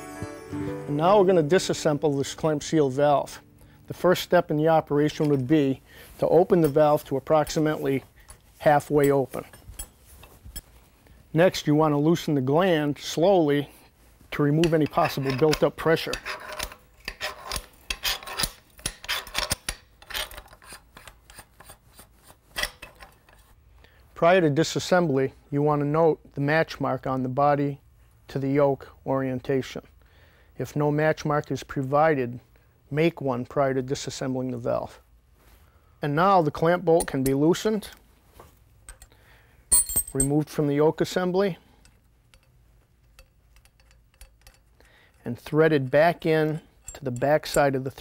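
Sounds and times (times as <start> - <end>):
metal tool clinking on bolt: 6.5 - 7.7, 8.8 - 10.7, 36.9 - 37.5, 38.8 - 40.5, 41.8 - 48.0
wrench clicking and scraping metal: 14.6 - 23.4, 36.9 - 37.5, 38.8 - 40.4, 41.8 - 48.0.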